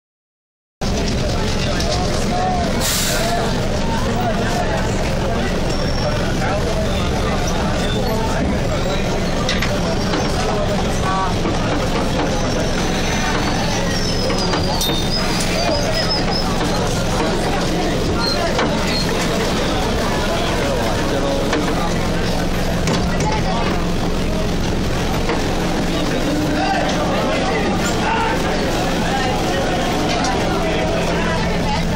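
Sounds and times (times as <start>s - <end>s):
crowd voices: 0.8s - 31.9s
train rumble: 0.8s - 31.9s
burst of hiss: 2.8s - 3.3s.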